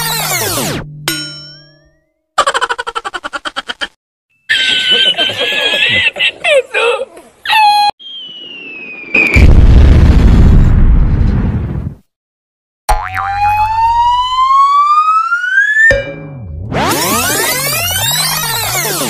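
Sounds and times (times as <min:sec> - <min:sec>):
cartoon ding: 0:00.4 - 0:02.1, 0:15.9 - 0:19.0
man's high wheezing laugh: 0:04.5 - 0:06.7
falling bomb whistle: 0:08.0 - 0:10.0
loud explosion: 0:08.2 - 0:12.0.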